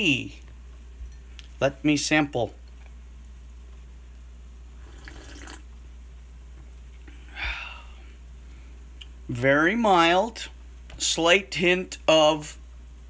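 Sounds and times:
person slurping tea: 4.8 - 5.6.

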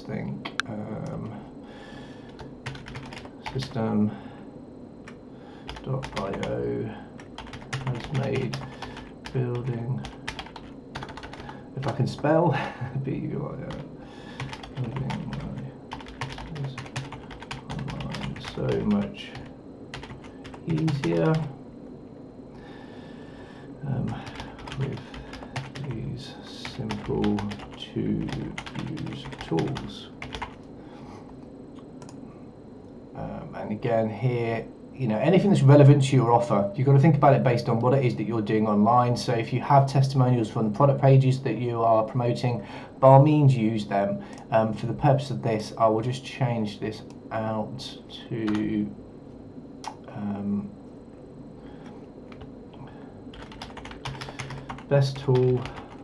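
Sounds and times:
computer keyboard typing: 2.3 - 3.7, 5.7 - 6.6, 7.2 - 12.0, 13.7 - 21.5, 24.0 - 26.0, 26.6 - 30.7, 48.4 - 48.7, 53.3 - 56.0.

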